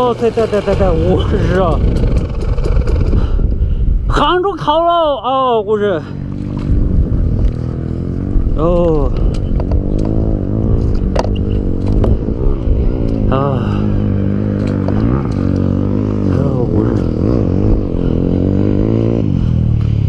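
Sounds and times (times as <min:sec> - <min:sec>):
dirt bike engine revving: 0:00.0 - 0:03.4, 0:06.0 - 0:20.0.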